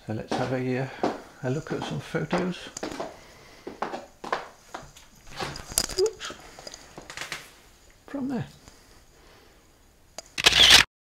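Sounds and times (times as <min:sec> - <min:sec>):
clicks and knocks of movement: 0:03.9 - 0:07.5.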